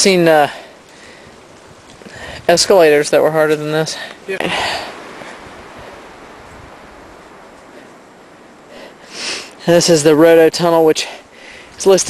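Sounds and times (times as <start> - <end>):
wind rushing through forest: 0.0 - 12.0.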